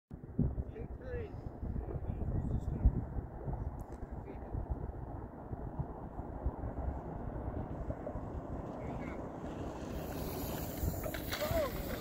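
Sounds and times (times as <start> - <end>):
wind buffeting microphone: 0.1 - 12.0.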